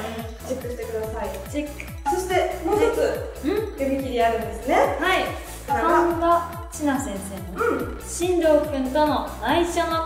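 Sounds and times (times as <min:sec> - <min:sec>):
upbeat electronic music: 0:00.0 - 0:10.0.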